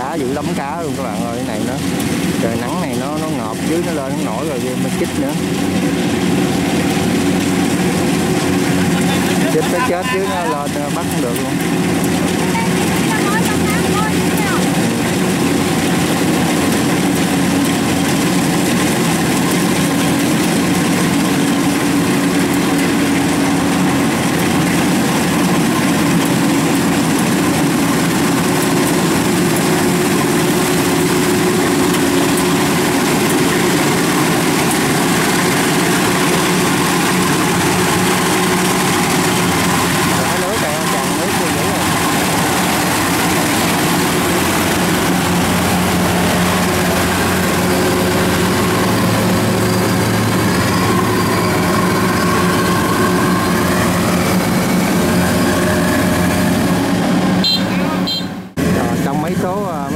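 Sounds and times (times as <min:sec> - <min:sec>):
combine harvester running: 0:00.0 - 0:59.9.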